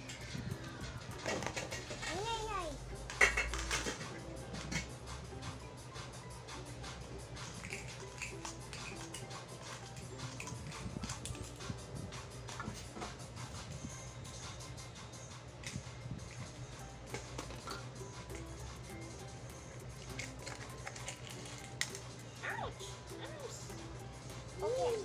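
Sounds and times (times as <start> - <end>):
plastic toy cookware clattering: 1.2 - 2.5, 3.1 - 4.9, 7.4 - 11.6, 20.0 - 22.0.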